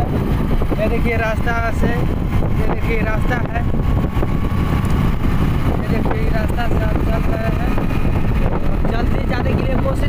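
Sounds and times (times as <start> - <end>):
motorcycle engine running: 0.0 - 10.0
wind buffeting microphone: 0.0 - 10.0.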